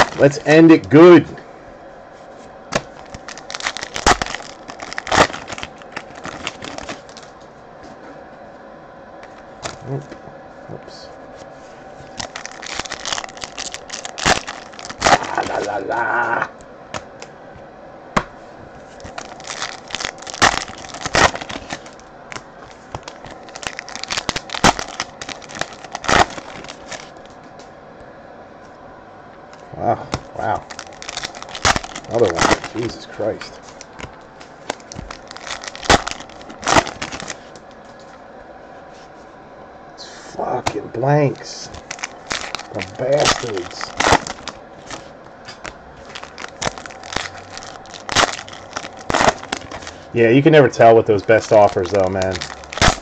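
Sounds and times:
foil wrappers tearing and crinkling: 0.0 - 0.6, 2.7 - 7.4, 9.6 - 9.9, 12.1 - 16.2, 18.9 - 27.3, 30.1 - 37.7, 41.3 - 50.1, 50.7 - 53.0
cards being handled: 30.1 - 38.2, 41.7 - 50.0, 51.3 - 53.0.

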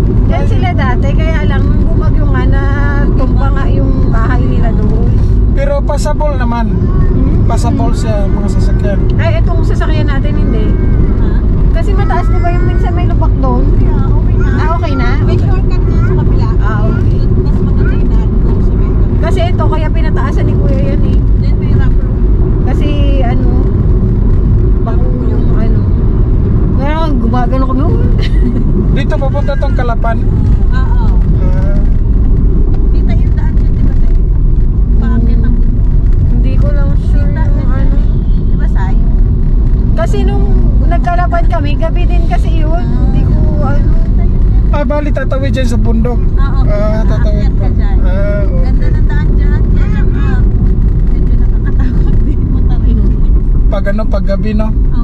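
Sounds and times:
car rumble on concrete road: 0.0 - 55.0
people talking: 0.2 - 22.1, 22.7 - 23.7, 24.8 - 25.9, 26.8 - 32.0, 32.9 - 34.2, 35.0 - 35.7, 36.3 - 39.1, 40.0 - 50.5, 51.1 - 55.0.

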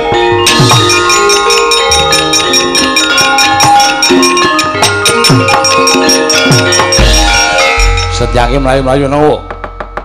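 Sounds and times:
metallophones and gongs ringing: 0.0 - 10.0
drum strokes dropping in pitch: 0.5 - 8.6.

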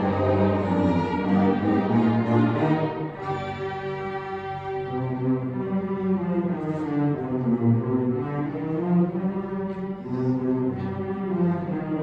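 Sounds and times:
string orchestra playing chords: 0.0 - 12.0.

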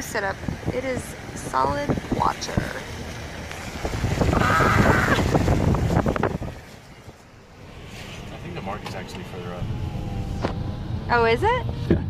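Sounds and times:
moving car: 0.0 - 12.0
wind buffeting microphone: 0.1 - 12.0.

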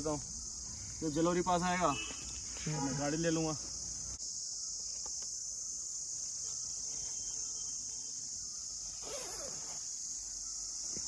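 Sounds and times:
insects shrilling: 0.0 - 11.0.

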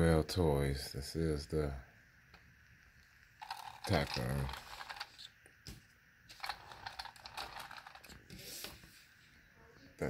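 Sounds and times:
person speaking: 3.5 - 5.4.

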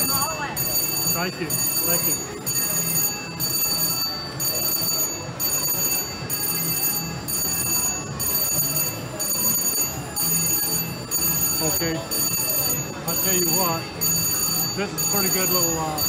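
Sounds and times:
slot machines ringing tones: 0.0 - 16.0.

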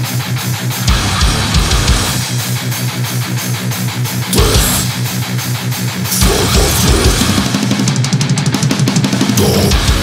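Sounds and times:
distorted electric guitars and bass: 0.0 - 10.0
rapid dense drumming: 3.9 - 10.0.

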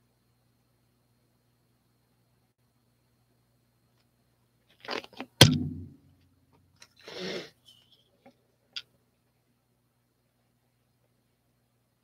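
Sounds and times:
sharp knock with low ring: 5.4 - 6.1.

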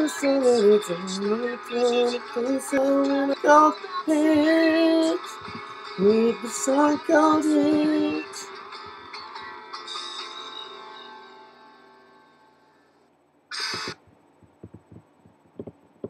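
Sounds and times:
person singing: 0.0 - 8.5
microphone handling thumps: 5.4 - 5.7, 13.7 - 16.0.

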